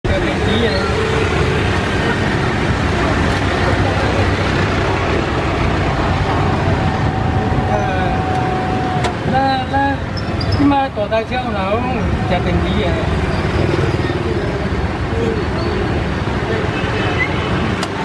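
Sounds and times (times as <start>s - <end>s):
voices talking: 0.0s - 17.9s
city street traffic: 0.0s - 18.0s.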